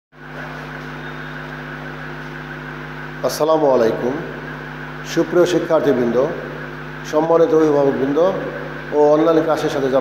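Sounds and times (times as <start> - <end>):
electrical hum: 0.2 - 10.0.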